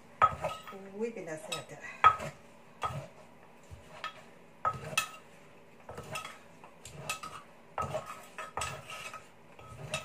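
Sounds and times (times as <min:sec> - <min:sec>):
spoon and pestle clinking on mortar: 0:00.2 - 0:00.8, 0:01.4 - 0:03.1, 0:03.9 - 0:05.3, 0:05.9 - 0:10.0.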